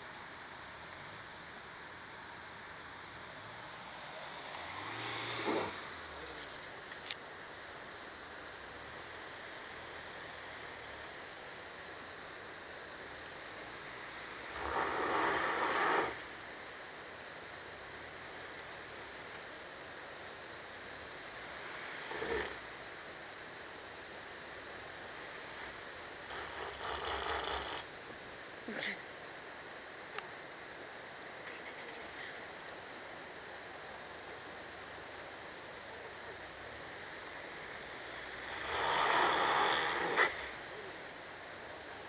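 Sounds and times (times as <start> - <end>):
faint vehicle engine: 0.0 - 42.0
wind hiss on microphone: 0.0 - 42.0.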